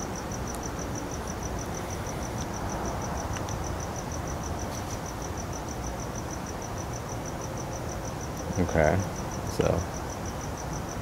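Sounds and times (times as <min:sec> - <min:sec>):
cricket chirping: 0:00.0 - 0:11.0
low background noise: 0:00.0 - 0:11.0.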